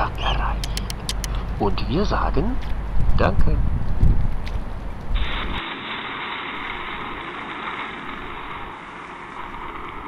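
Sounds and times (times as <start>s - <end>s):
low rumble: 5.1s - 10.0s
heavy rain hissing: 5.2s - 10.0s.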